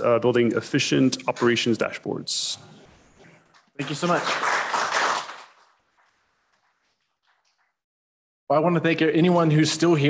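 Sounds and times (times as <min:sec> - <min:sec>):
audience applause: 0:03.8 - 0:05.8.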